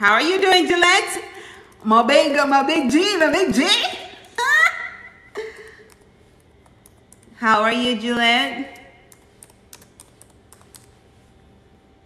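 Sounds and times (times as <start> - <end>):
faint typing clicks: 8.7 - 11.0.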